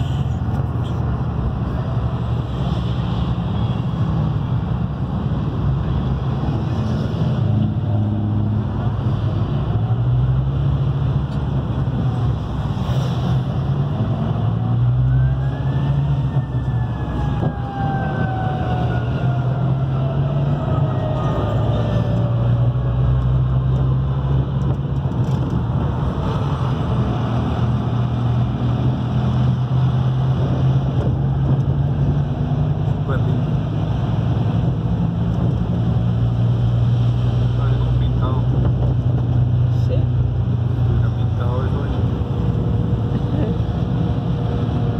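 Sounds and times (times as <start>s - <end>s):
bus engine running: 0.0s - 44.9s
road and tyre noise: 0.0s - 44.9s.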